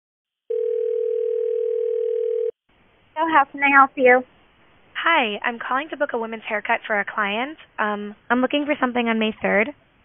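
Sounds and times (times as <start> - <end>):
telephone ringback tone: 0.5 - 2.6.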